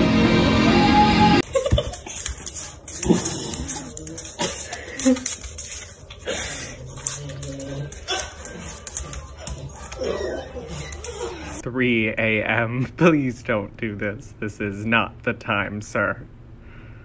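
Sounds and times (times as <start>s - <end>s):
puppy vocalizing: 1.7s - 11.6s.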